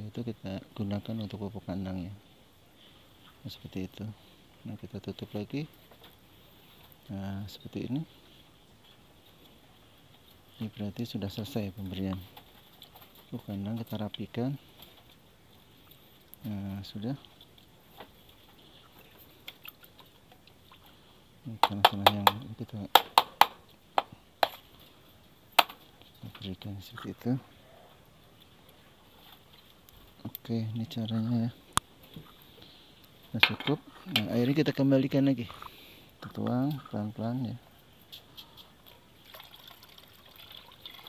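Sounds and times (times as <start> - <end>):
wet clicks and splashes: 19.4 - 21.0
water pouring into water: 39.2 - 41.0.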